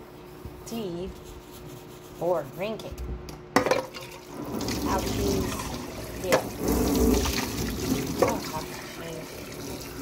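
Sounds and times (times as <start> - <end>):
metal cup being rinsed: 4.0 - 10.0.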